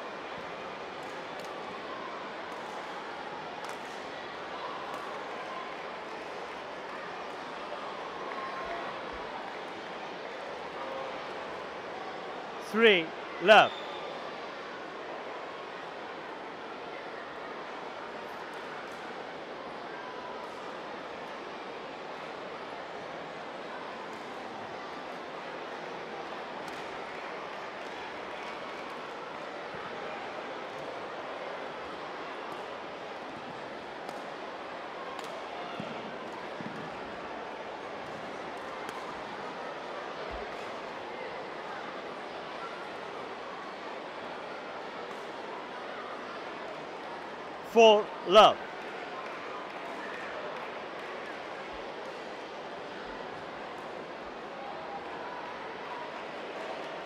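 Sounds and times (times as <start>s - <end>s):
crowd murmur: 12.6s - 13.8s, 47.4s - 48.8s.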